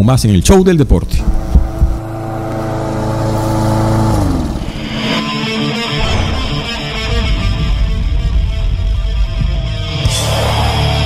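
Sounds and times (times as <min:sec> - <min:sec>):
engine-like sustained tone: 0:01.1 - 0:09.5
guitar-driven rock music: 0:01.2 - 0:11.0.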